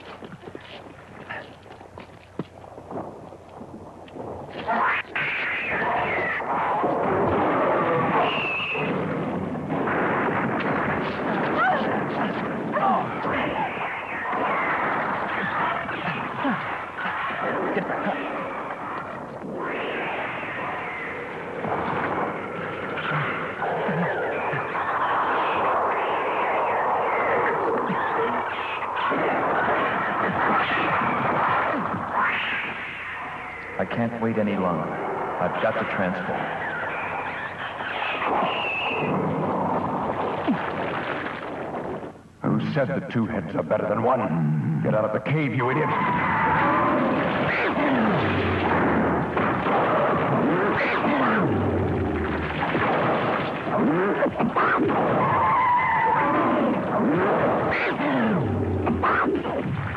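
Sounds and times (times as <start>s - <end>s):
dense rumbling with bangs: 5.8s - 20.2s.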